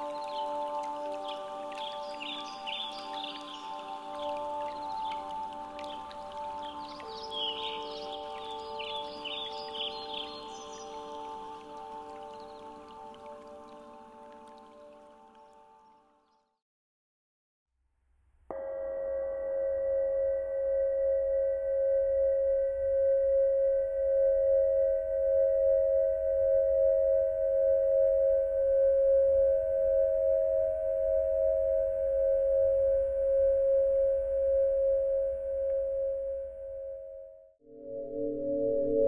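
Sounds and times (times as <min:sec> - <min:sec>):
crystal singing bowl ringing: 0:00.0 - 0:12.3, 0:18.5 - 0:39.0.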